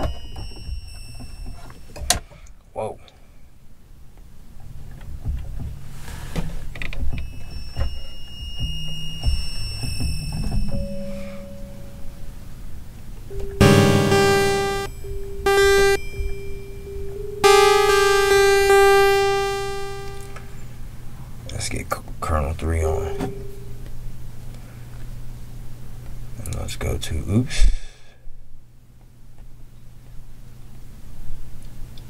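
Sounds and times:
low hum: 0:13.6 - 0:14.9, 0:15.5 - 0:16.0, 0:17.4 - 0:20.5
synthesizer notes: 0:13.6 - 0:14.9, 0:15.5 - 0:16.0, 0:17.4 - 0:20.5.

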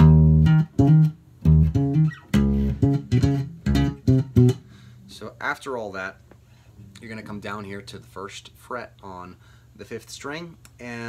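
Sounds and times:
electric bass guitar: 0:00.0 - 0:04.9.

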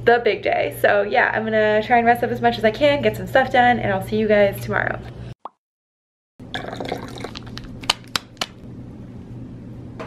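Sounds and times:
powder crinkling into glass: 0:06.8 - 0:07.7.

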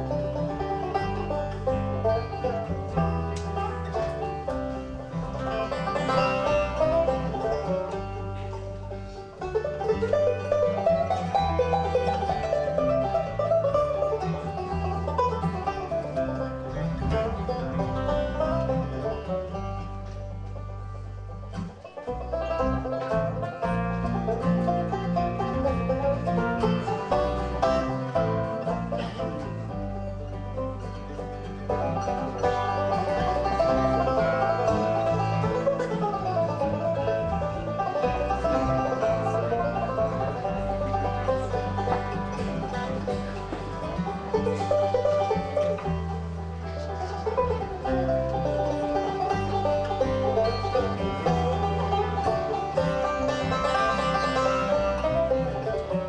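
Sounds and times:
acoustic guitar: 0:00.0 - 0:56.0
banjo picking: 0:00.0 - 0:56.0
bass line: 0:00.0 - 0:56.0.

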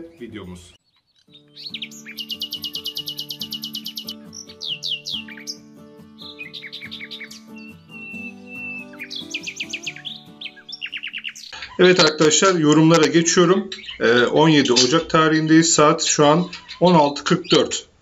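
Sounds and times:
bird chirping and trilling: 0:00.0 - 0:18.0.

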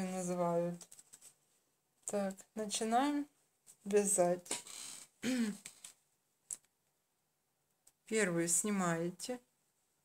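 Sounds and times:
woman clearing her throat: 0:05.2 - 0:05.6.

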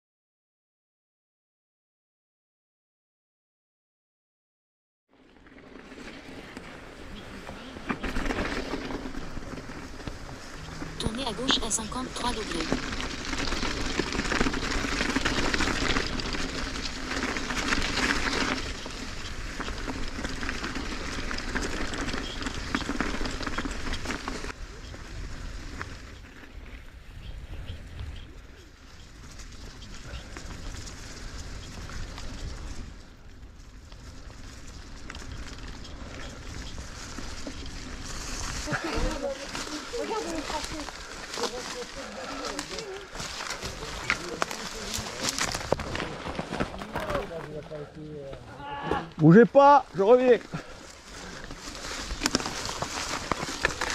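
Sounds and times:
bicycle tyre rumble: 0:05.1 - 0:53.9
wind on microphone: 0:21.2 - 0:33.1.

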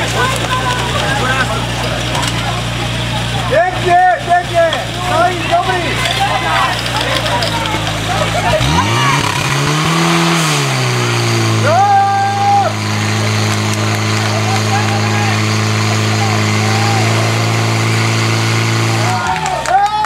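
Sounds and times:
fire pump engine running: 0:00.0 - 0:20.0.

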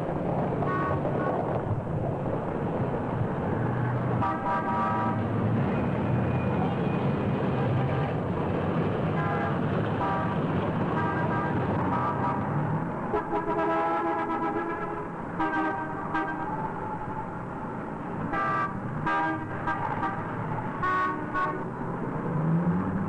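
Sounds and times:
city street traffic: 0:00.0 - 0:23.0
car horns honking: 0:00.6 - 0:01.4, 0:04.2 - 0:05.2, 0:09.2 - 0:12.5, 0:13.1 - 0:17.0, 0:18.3 - 0:21.7.

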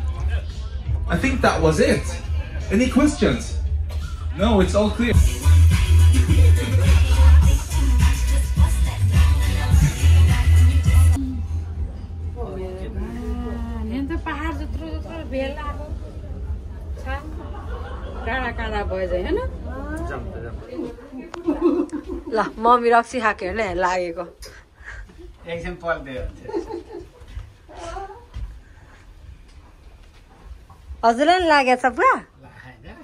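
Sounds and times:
steady low rumble: 0:00.0 - 0:25.4
high gliding vocal sounds: 0:05.2 - 0:11.7
low rumble: 0:09.7 - 0:19.9.

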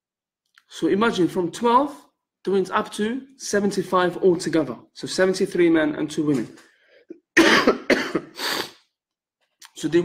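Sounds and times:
man coughing: 0:07.1 - 0:08.7.

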